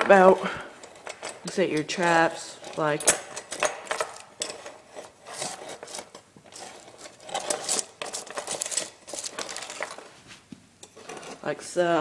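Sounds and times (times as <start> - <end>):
steel traps and chains clinking: 0.0 - 10.1
rustling: 0.0 - 11.6.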